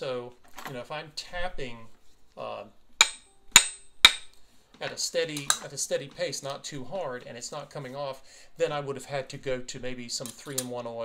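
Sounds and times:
tool tapping on metal with ring: 3.0 - 4.4.

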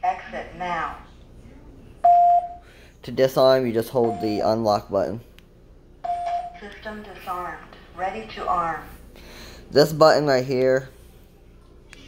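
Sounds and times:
alarm panel beep: 2.0 - 2.6, 4.0 - 4.5, 6.0 - 6.6.

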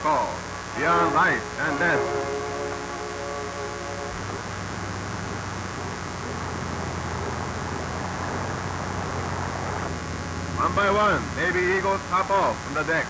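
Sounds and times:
film soundtrack hiss: 0.0 - 13.0
steady tones: 0.0 - 13.0
propeller aircraft engines running: 0.6 - 12.7.

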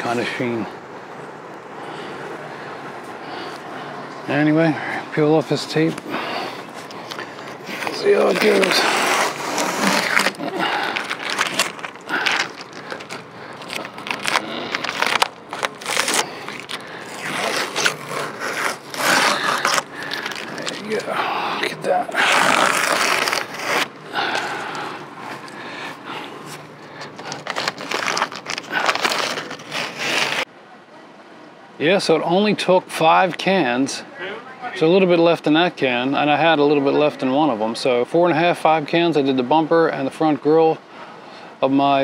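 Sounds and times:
masking tape peeling off: 6.1 - 30.5.

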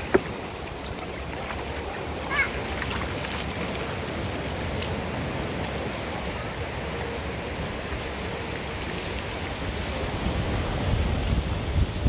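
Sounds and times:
shallow surf on sand: 0.0 - 12.0.

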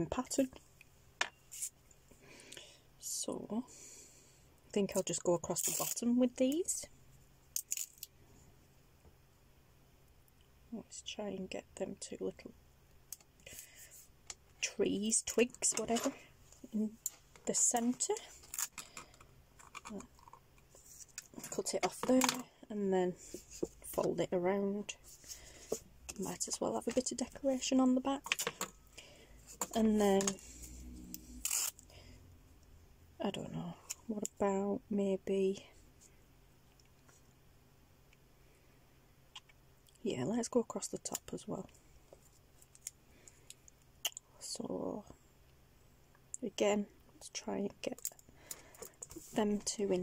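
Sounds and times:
faint room hum: 0.0 - 50.0.

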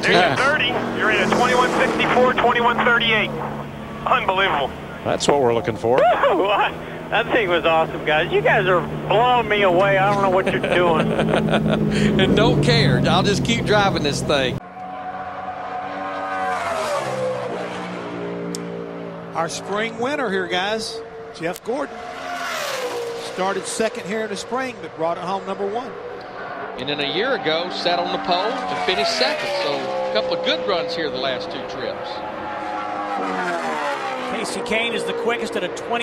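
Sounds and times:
race car engine passing by: 0.0 - 36.0.

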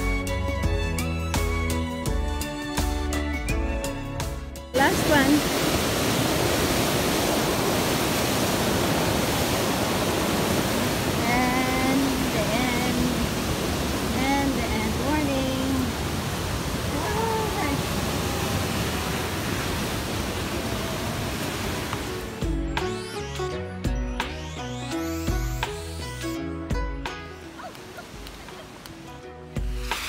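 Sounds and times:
music: 0.0 - 5.5, 11.2 - 13.2, 14.2 - 15.9, 22.0 - 30.0
river rushing over rocks: 4.8 - 22.4
voices: 11.2 - 13.3, 14.1 - 16.0, 16.8 - 19.0.

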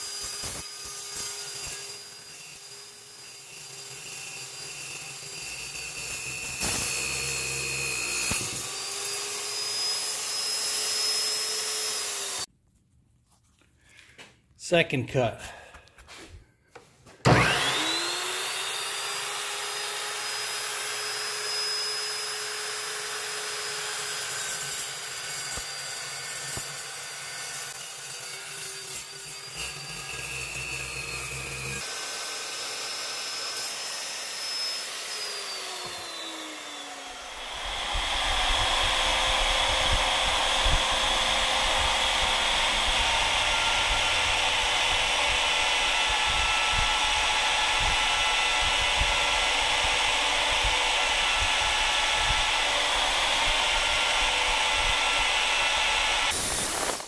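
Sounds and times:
chop saw cutting metal: 0.0 - 12.5, 17.2 - 57.0
electromagnetic drill running: 0.0 - 12.5, 17.3 - 57.0.

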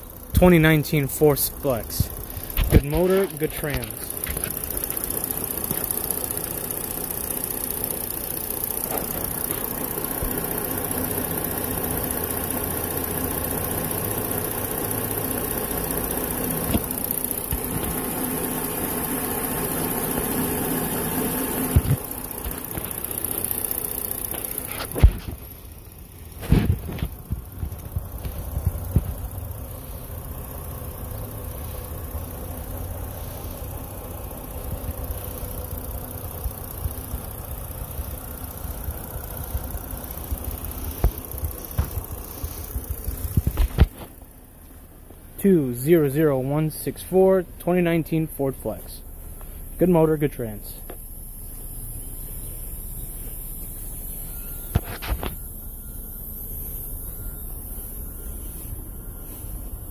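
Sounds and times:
car engine idling: 0.0 - 59.9
sharp engine knocks: 24.2 - 25.5, 39.5 - 44.2.

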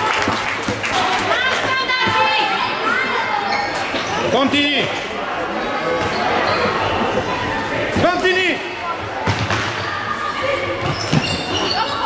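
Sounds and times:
shoe squeaks: 3.5 - 4.3, 10.8 - 12.0.

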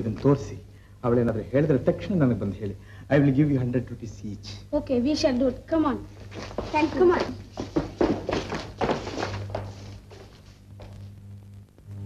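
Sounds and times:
man talking: 0.0 - 4.6
dull knocks and thuds: 6.5 - 9.6.

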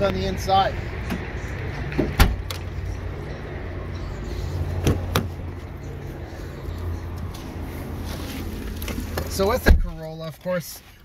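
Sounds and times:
steady low rumble: 0.0 - 9.3
car trunk lid slamming shut: 2.0 - 2.4.

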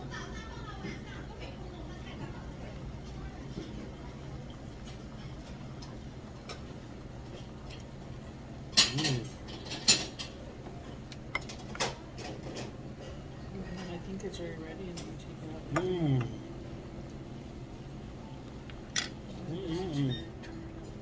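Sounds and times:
low hum: 14.3 - 21.0.

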